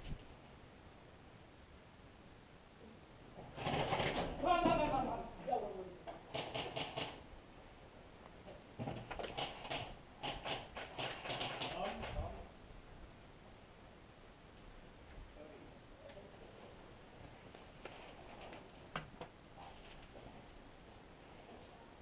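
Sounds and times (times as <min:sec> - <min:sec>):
airsoft guns firing bursts: 0:03.6 - 0:04.4, 0:06.3 - 0:07.2, 0:09.2 - 0:12.2.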